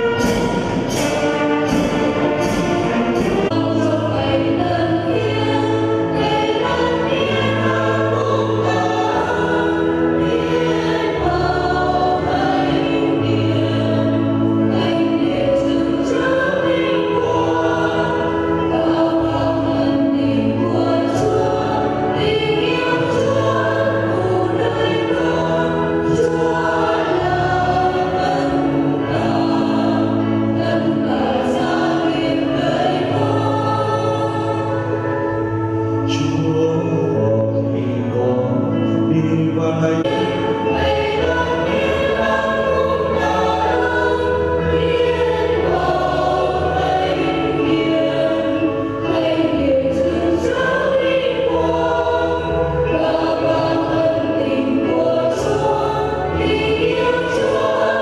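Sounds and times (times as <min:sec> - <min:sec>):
choir singing a hymn: 0:00.0 - 0:58.0
instrumental accompaniment: 0:00.0 - 0:58.0.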